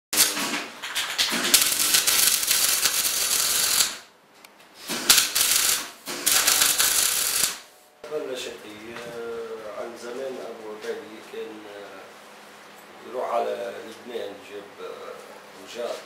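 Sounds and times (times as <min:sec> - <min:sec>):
angle grinder grinding sheet steel: 0:01.6 - 0:04.0, 0:05.1 - 0:07.6.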